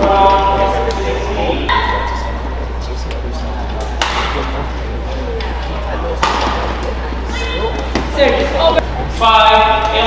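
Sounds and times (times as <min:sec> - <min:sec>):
background murmur of hall: 0:00.0 - 0:10.0
racket hitting shuttlecock: 0:03.9 - 0:04.5, 0:06.2 - 0:06.7.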